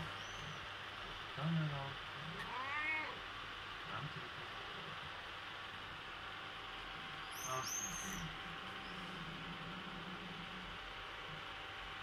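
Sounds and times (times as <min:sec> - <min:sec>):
cat meowing: 0:02.4 - 0:03.2.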